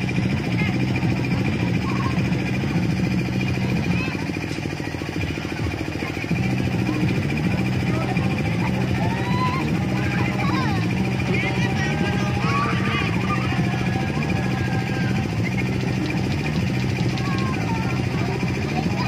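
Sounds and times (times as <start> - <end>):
children calling faintly: 0.0 - 19.0
motor droning with fast pulse: 0.0 - 19.0.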